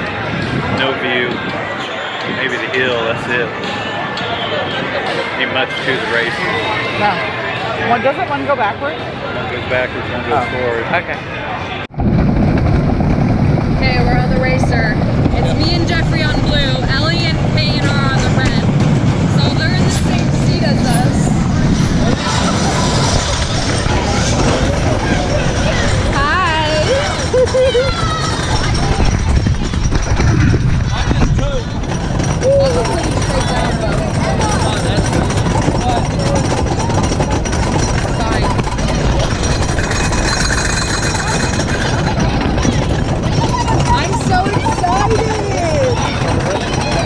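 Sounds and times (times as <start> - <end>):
roller coaster track rumble: 0.0 - 47.0
wind: 0.0 - 47.0.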